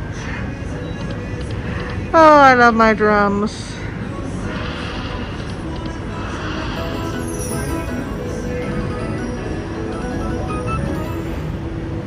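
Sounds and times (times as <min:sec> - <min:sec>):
slot machine reels spinning: 0:04.6 - 0:11.7
slot machine bonus music: 0:06.8 - 0:11.8.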